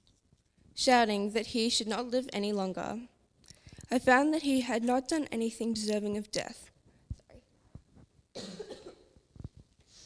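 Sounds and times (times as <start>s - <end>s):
man coughing: 8.4s - 9.2s.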